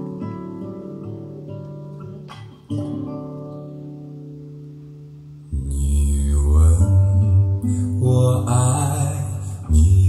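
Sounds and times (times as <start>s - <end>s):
acoustic guitar: 0.0s - 10.0s
bass: 5.1s - 10.0s
low singing voice: 5.5s - 10.0s.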